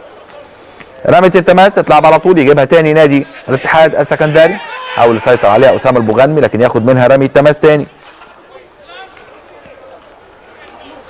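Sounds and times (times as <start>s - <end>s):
footballers calling out: 0.0s - 11.0s
low open-air background: 0.0s - 11.0s.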